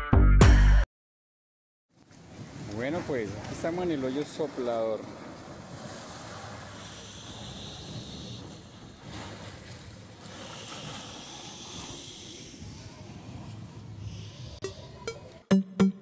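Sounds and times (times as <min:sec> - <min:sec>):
sea surf rushing through rocks: 0:02.3 - 0:14.3
spray surging: 0:06.4 - 0:09.5, 0:10.2 - 0:15.0.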